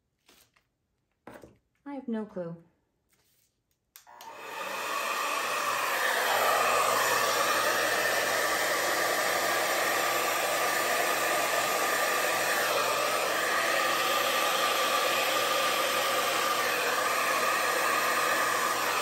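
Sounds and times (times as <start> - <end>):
hair dryer running: 4.0 - 19.0.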